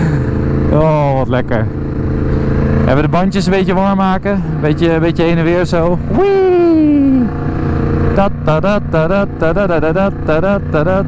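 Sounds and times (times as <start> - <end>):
motorcycle engine running: 0.0 - 11.0
man talking: 0.7 - 1.8, 2.8 - 7.3, 8.1 - 11.0.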